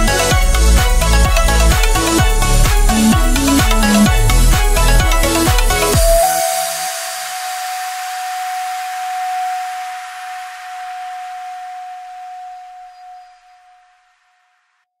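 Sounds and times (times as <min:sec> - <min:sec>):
hissing noise wash: 0:01.5 - 0:13.1
high synth note held: 0:06.0 - 0:14.0.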